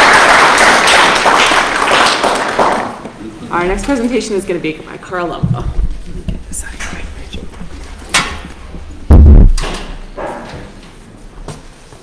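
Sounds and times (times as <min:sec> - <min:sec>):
microphone being bumped: 0:05.4 - 0:06.5, 0:07.4 - 0:10.2
sharp knock on microphone: 0:09.1 - 0:10.4.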